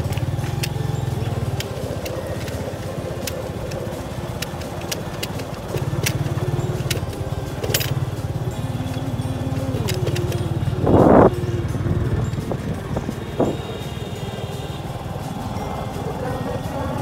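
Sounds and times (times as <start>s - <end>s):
motorcycle engine running: 0.0s - 17.0s
sharp clicks and rattles: 0.0s - 17.0s.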